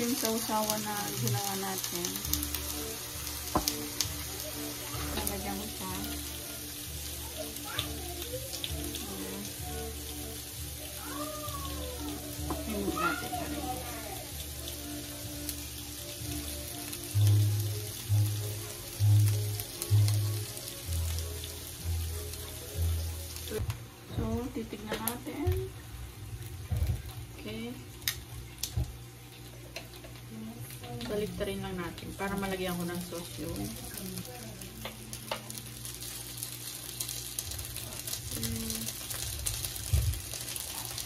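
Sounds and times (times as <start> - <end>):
meat sizzling on a grill: 0.0 - 41.0.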